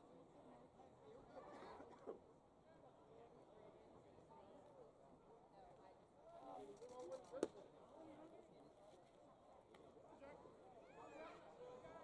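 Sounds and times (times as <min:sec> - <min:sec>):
faint crowd chatter: 0:00.0 - 0:12.0.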